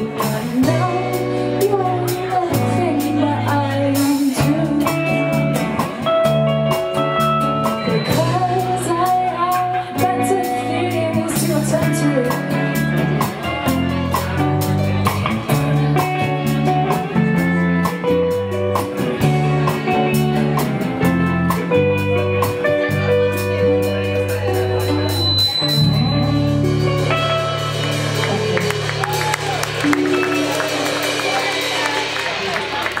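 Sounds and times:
live rock band playing: 0.0 - 33.0
audience clapping: 27.7 - 33.0.

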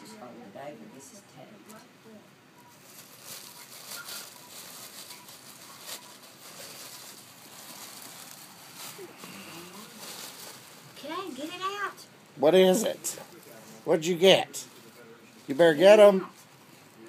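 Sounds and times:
wrapping paper rustling and tearing: 2.7 - 11.8.

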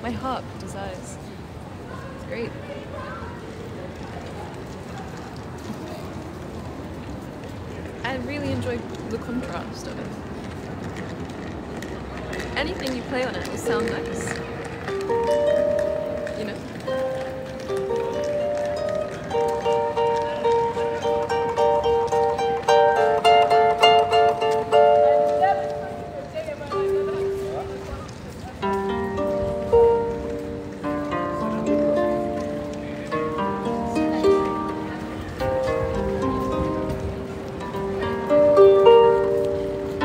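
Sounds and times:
harp melody plucked: 13.4 - 40.0.

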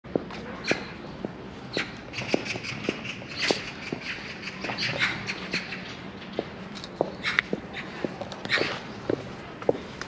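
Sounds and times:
footsteps on stone paving: 0.1 - 10.0.

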